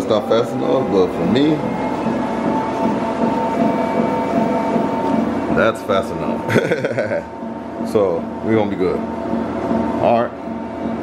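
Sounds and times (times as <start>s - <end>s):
treadmill belt rushing: 0.0s - 11.0s
treadmill motor whine: 0.0s - 11.0s.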